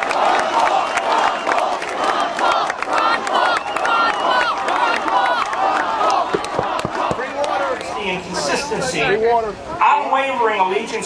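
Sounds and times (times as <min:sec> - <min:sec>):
hands clapping: 0:00.0 - 0:07.9
crowd cheering and shouting: 0:00.0 - 0:10.4.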